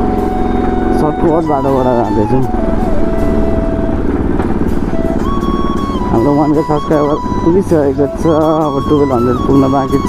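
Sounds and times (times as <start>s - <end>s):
motorcycle engine running: 0.0s - 10.0s
steady held tone: 0.0s - 10.0s.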